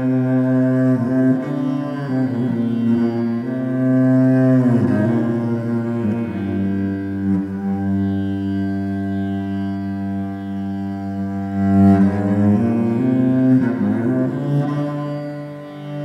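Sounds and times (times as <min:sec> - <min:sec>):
cello bowed in long notes: 0:00.0 - 0:16.0.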